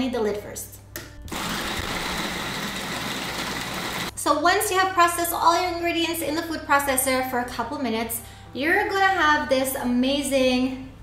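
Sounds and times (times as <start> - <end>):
food processor motor whining: 1.3 - 4.1.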